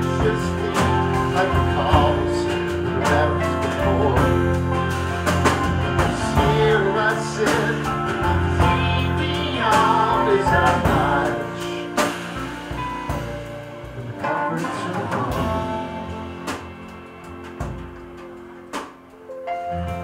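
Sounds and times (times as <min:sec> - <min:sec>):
man singing: 0:00.0 - 0:05.0, 0:05.8 - 0:12.3, 0:14.0 - 0:16.5
country-folk band playing: 0:00.0 - 0:20.0
woman singing: 0:06.3 - 0:12.1.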